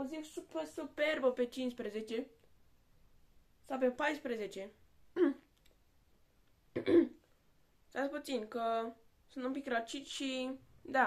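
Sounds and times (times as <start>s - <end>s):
child coughing: 5.2s - 5.4s, 6.8s - 7.2s.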